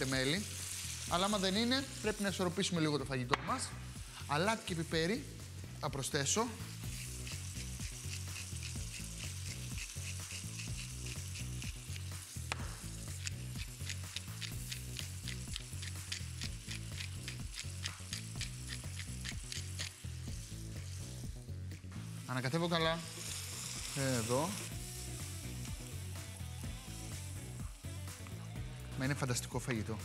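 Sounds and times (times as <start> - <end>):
food sizzling in a pot: 0.0 - 28.6
pepper mill grinding: 6.8 - 21.2, 22.5 - 27.1.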